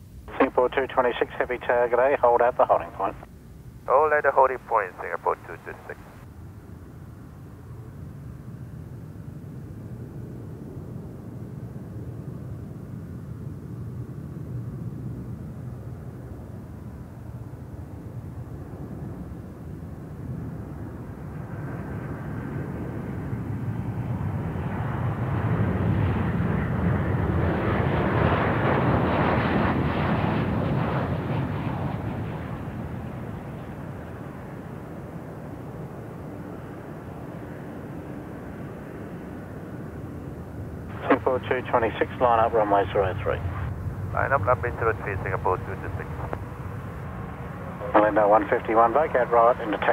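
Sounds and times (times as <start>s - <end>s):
jet engines rumbling: 0.0s - 49.9s.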